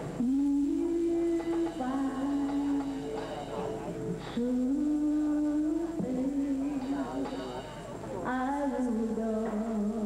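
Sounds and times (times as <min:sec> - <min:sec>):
woman humming into microphone: 0:00.2 - 0:10.0.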